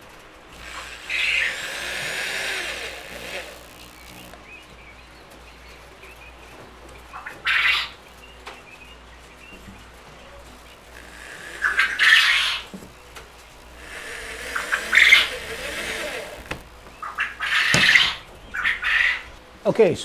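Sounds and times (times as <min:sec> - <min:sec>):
quail calling: 0:07.1 - 0:08.0, 0:10.7 - 0:12.7, 0:13.7 - 0:19.4.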